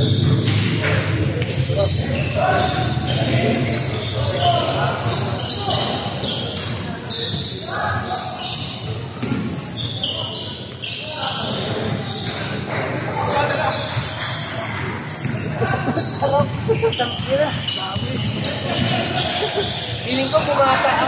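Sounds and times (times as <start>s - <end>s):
background chatter: 0.0s - 21.0s.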